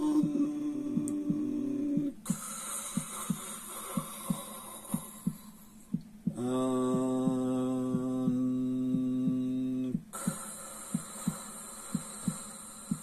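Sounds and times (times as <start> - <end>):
low hummed chant note: 0.0 - 3.5, 6.3 - 10.6
breathy hiss: 0.0 - 13.0
heartbeat thumping: 0.0 - 13.0.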